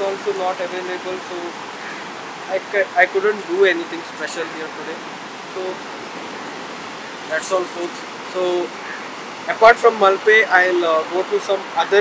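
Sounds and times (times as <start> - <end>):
ocean surf on shore: 0.0 - 12.0.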